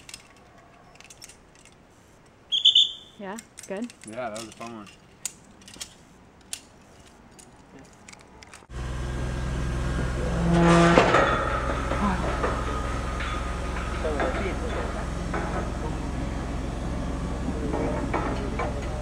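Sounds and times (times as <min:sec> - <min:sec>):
metal carabiner clicks: 0:00.0 - 0:01.8, 0:03.2 - 0:08.7
faint voices: 0:13.6 - 0:19.0.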